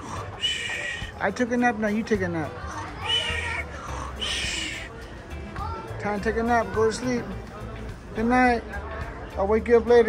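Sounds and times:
high-pitched meow-like cries: 3.0s - 3.5s.

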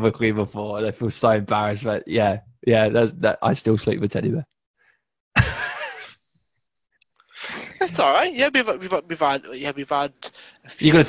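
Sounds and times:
man speaking: 7.7s - 11.0s.

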